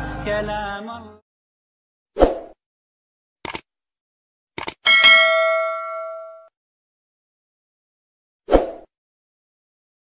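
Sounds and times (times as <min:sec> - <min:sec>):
short clicks: 0:03.4 - 0:03.7, 0:04.6 - 0:04.8
bell-like chime: 0:04.9 - 0:06.5.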